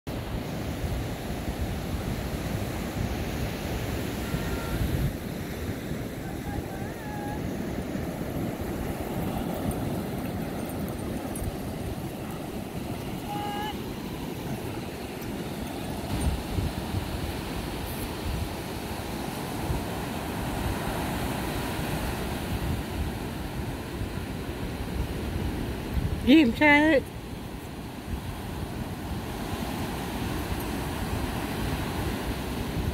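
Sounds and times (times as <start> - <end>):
surf washing on beach: 0.1 - 32.9
wind buffeting microphone: 0.2 - 32.9.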